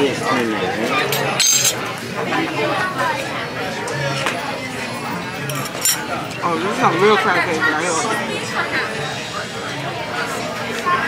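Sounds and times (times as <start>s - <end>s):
diners chatter: 0.0s - 11.0s
tableware clink: 1.0s - 1.8s, 5.4s - 6.2s.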